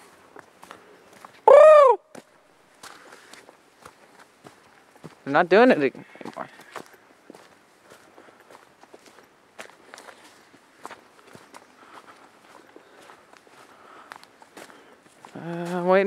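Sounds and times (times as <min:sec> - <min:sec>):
footsteps on wet dirt trail: 0:00.0 - 0:16.0.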